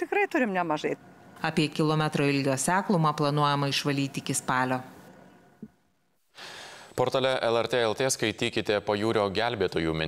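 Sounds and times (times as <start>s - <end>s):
man breathing in: 6.3s - 7.0s
man speaking: 7.0s - 10.0s.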